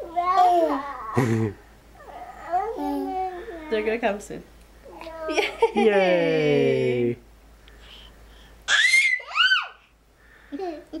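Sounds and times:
baby squealing: 8.7 - 9.8.

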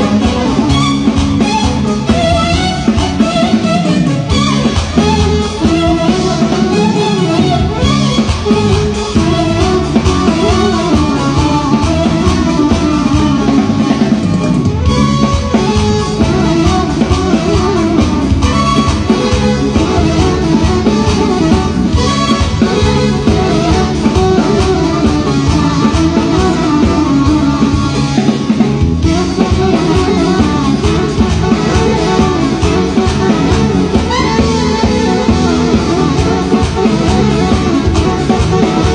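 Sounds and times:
drums: 0.0 - 38.9
electronic keyboards melody: 0.0 - 38.9
live band music: 0.0 - 38.9
violin: 0.0 - 38.9.

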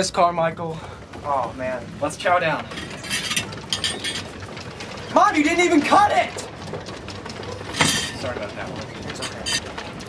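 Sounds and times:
handling noise: 0.9 - 10.0.

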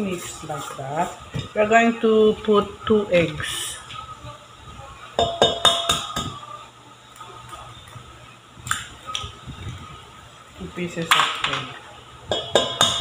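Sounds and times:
egg tapped against metal bowl: 5.2 - 6.4, 12.3 - 13.0
kitchenware clinking: 5.2 - 6.4, 11.0 - 13.0.

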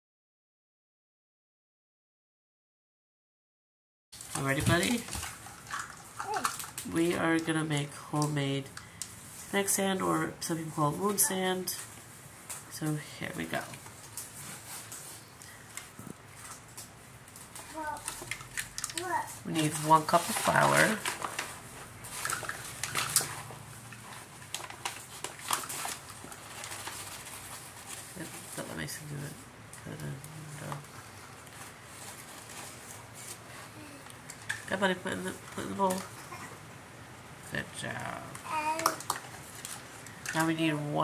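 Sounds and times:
person speaking: 9.5 - 11.9
faint rustles: 19.0 - 34.6.

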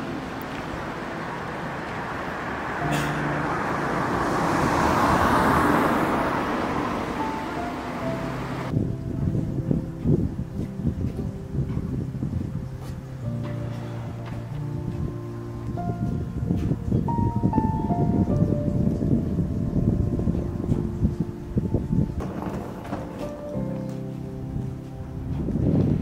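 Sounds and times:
car passing on street: 0.0 - 9.0, 13.0 - 25.8
background music: 0.0 - 26.0.

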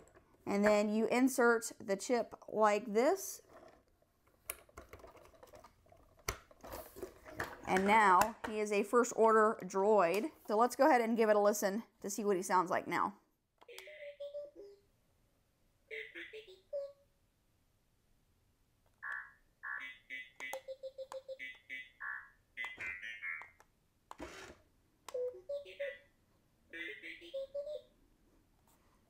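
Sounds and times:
toy robot electronic beeps and whistles: 19.0 - 23.6, 25.2 - 26.1, 26.8 - 27.9.

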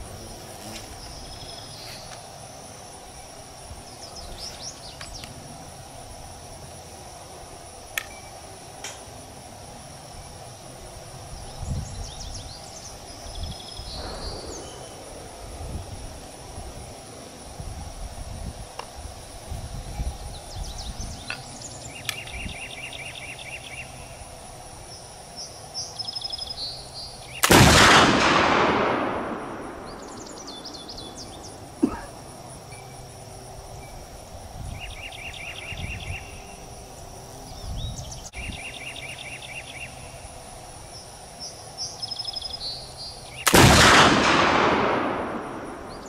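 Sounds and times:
birds chirping: 0.0 - 2.3, 3.2 - 5.4, 11.3 - 15.5, 20.2 - 24.3, 29.0 - 33.0, 33.8 - 40.2, 44.8 - 46.0
insects buzzing: 0.0 - 46.0
rifle shot: 27.4 - 31.3, 43.4 - 46.0.

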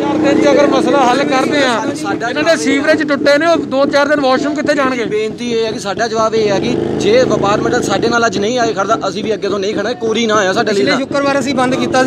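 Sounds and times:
men talking: 0.0 - 12.0
vehicle engine running: 0.0 - 12.0.

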